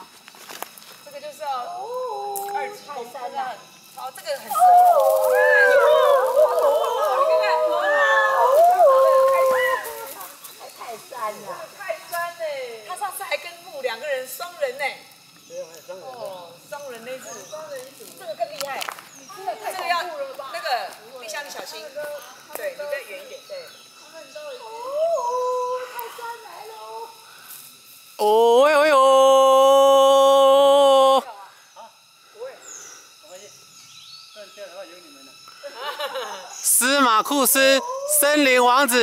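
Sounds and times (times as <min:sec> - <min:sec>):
people calling out: 0:04.3 - 0:10.4, 0:28.2 - 0:31.4
people yelling: 0:04.3 - 0:10.4, 0:28.2 - 0:31.4, 0:36.8 - 0:39.0.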